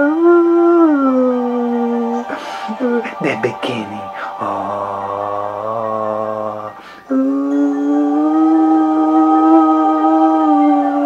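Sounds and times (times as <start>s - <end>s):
man singing unaccompanied: 1.2s - 11.0s.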